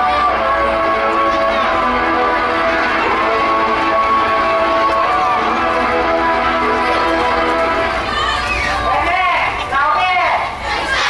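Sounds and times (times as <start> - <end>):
music: 0.0 - 9.1
children shouting: 0.0 - 11.0.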